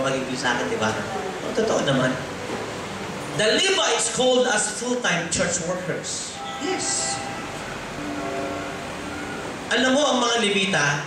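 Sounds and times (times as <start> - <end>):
organ-like keyboard chords: 6.3 - 10.0.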